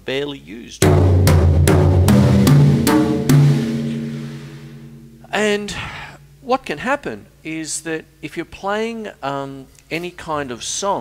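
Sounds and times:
tom-toms struck with sticks: 0.8 - 5.4.

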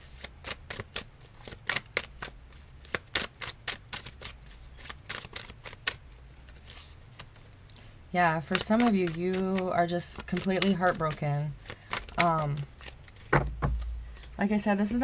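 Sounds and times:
cards being shuffled: 0.0 - 7.5, 8.4 - 14.2.

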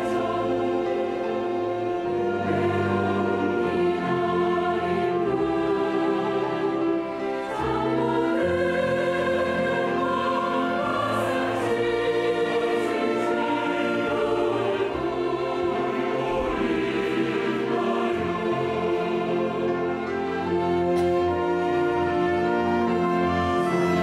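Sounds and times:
choir singing a slow hymn: 0.0 - 24.0
orchestra of strings and horns: 0.0 - 24.0.

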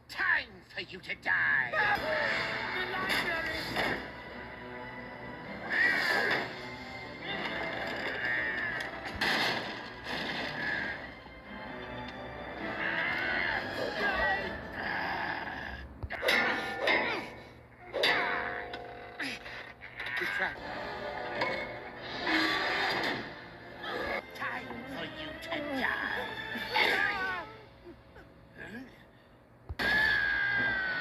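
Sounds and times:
cartoon vocal sound from television: 5.6 - 6.6, 12.6 - 18.3, 22.0 - 27.6
heavy crash: 9.0 - 11.0.

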